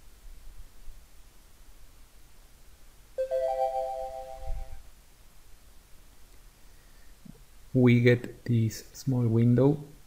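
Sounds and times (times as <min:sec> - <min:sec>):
rising electronic chime: 0:03.2 - 0:04.8.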